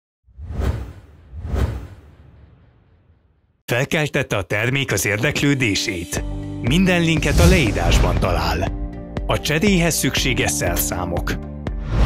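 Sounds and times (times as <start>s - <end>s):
whoosh sound effects: 0.4s - 3.1s.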